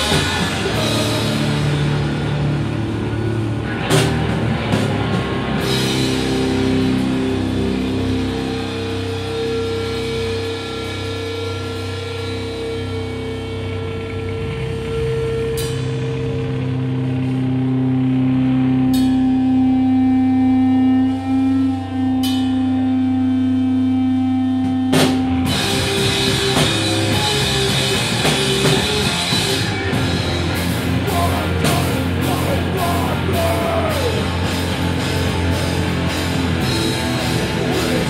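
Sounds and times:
drum and cymbal hits: 0.0s - 13.4s, 24.6s - 38.0s
electric guitar sustained notes: 0.0s - 38.0s
live rock band: 0.0s - 38.0s.

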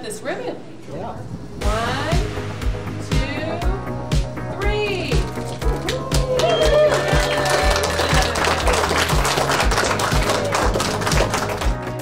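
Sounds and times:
background music with beat: 1.6s - 12.0s
applause: 5.8s - 12.0s.

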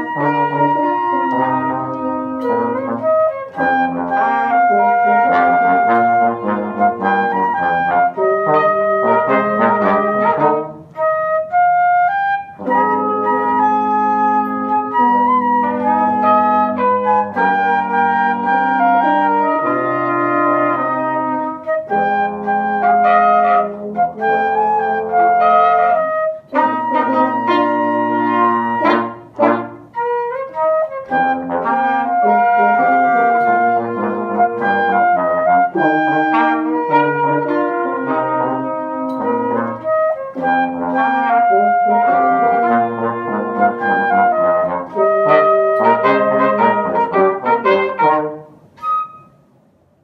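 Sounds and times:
wind and brass quartet playing: 0.0s - 49.3s.

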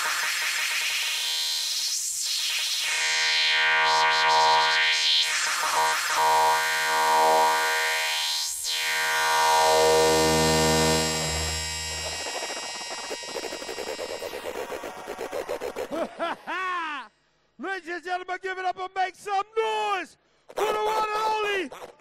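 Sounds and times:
electronic dance music: 3.9s - 14.7s.

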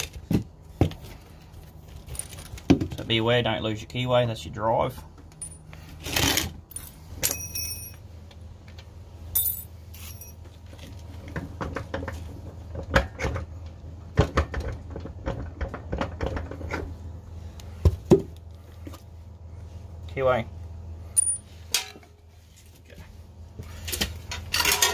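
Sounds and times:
metallic clinks and knocks: 2.0s - 2.6s, 5.4s - 5.8s, 6.7s - 8.0s, 9.4s - 10.5s, 21.2s - 22.0s.

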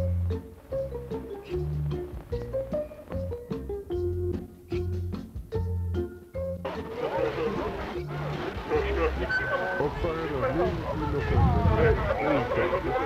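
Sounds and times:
electronic organ music: 0.0s - 10.0s
many voices chattering: 6.7s - 13.0s.

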